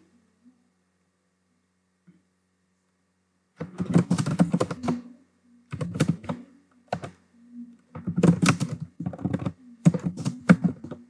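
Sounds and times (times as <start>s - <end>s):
computer keyboard typing: 3.6s - 5.0s, 5.7s - 7.2s, 7.9s - 11.0s.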